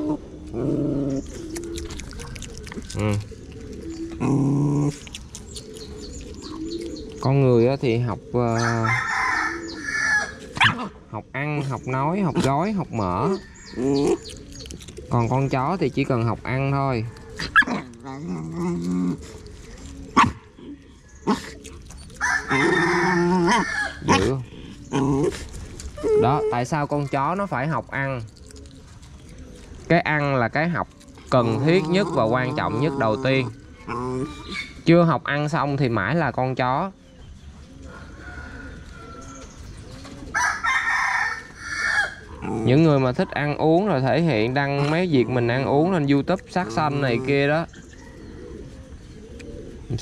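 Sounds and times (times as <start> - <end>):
dog low drawn-out vocalizing: 0.0 - 40.4, 42.0 - 50.0
rooster crowing: 8.6 - 10.4, 22.2 - 24.1, 38.2 - 39.4, 40.3 - 42.3
dog barking: 20.2 - 20.4.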